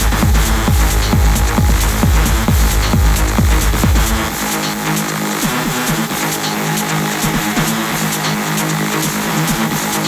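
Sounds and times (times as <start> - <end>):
held synth notes: 0.0 - 8.2
ticking high percussion: 0.0 - 10.0.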